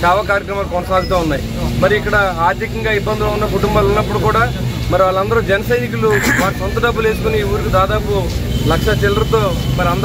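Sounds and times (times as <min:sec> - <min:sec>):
man speaking: 0:06.1 - 0:06.8.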